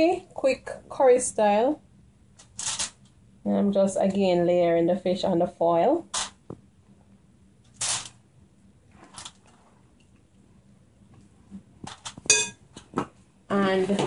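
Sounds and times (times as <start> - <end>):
aluminium foil crinkling: 7.7 - 8.2.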